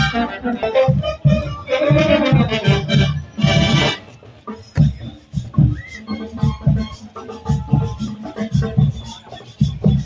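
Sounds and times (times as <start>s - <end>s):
marching percussion: 0.0s - 10.0s.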